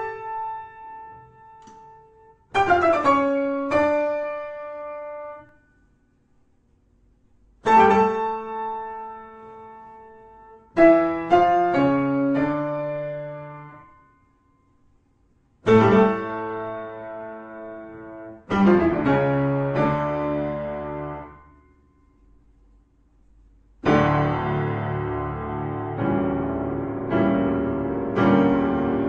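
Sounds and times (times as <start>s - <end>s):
slow solo piano music: 0.0s - 5.8s, 7.6s - 14.7s, 15.6s - 22.4s, 23.8s - 29.0s.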